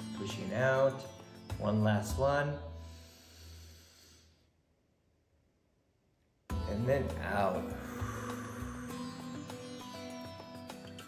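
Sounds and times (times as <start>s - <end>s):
person breathing in deeply: 2.8s - 4.6s, 7.6s - 10.3s.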